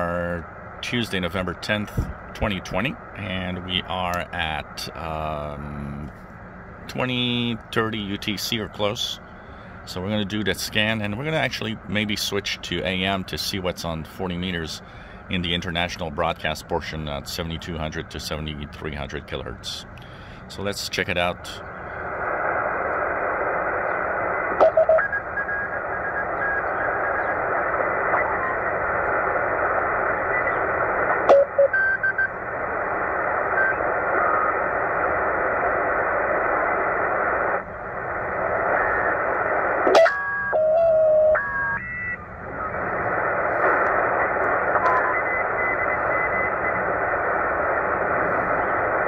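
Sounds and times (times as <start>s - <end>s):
radio band noise: 0.0s - 6.2s, 6.9s - 49.0s
whistling radio signal tones: 21.4s - 49.0s.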